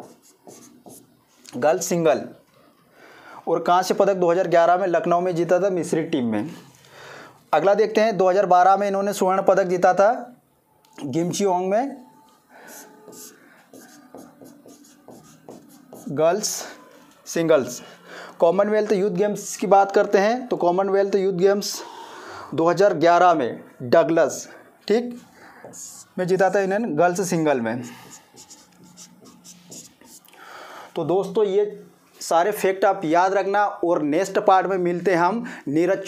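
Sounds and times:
marker scratching on board: 0.0s - 1.2s, 12.6s - 16.7s, 25.1s - 26.7s, 27.8s - 30.3s.

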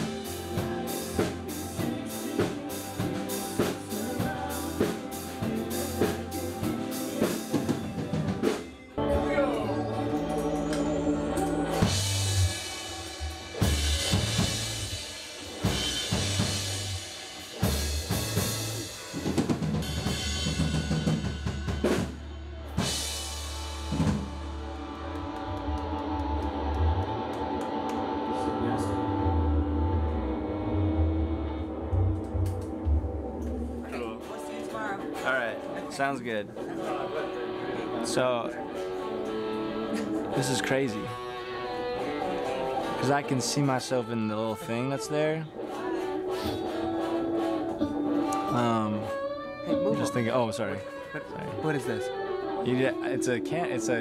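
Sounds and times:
drum kit beat: 0.0s - 29.2s, 45.6s - 50.3s
rock band playing: 0.0s - 54.0s.

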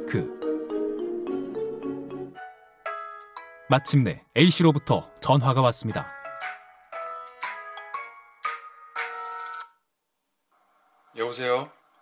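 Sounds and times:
phone ringtone: 7.0s - 9.8s.

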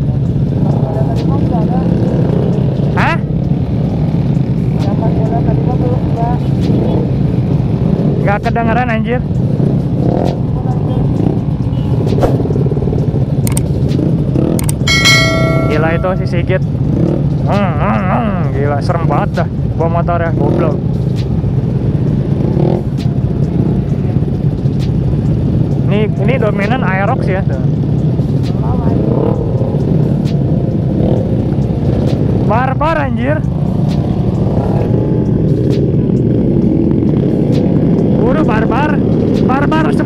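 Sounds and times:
motorcycle engines idling: 0.0s - 40.0s
sharp clicks: 13.4s - 14.0s, 14.6s - 14.8s
bright bell-like chime: 14.9s - 16.6s.

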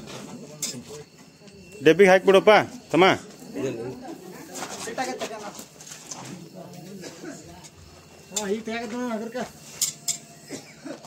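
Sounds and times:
people talking: 0.1s - 9.6s.

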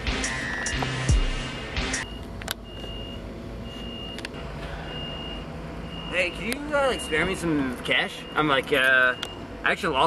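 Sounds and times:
music with bass sweeps: 0.0s - 2.1s
high electronic beep: 0.1s - 4.2s.

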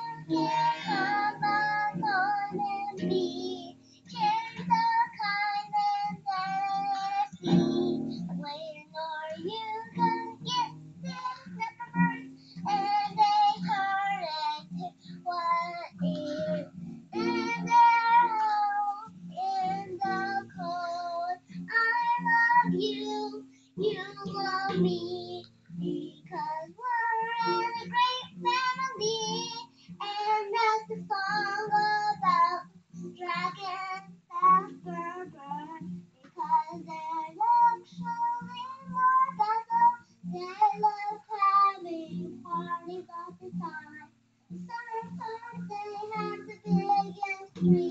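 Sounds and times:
acoustic guitar strumming: 0.0s - 47.9s
girl singing: 0.0s - 47.9s.

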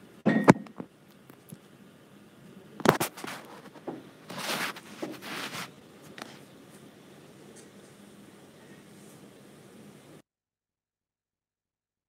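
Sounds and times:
rustling scraping swishes: 3.0s - 6.4s.

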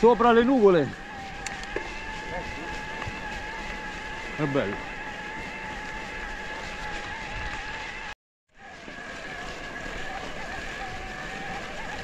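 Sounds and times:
electric bike motor whining: 0.0s - 12.0s
tyres rolling on gravel: 0.0s - 12.0s.

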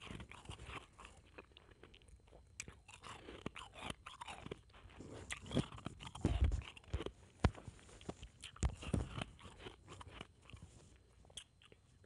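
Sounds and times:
crunching ice: 0.0s - 7.1s.

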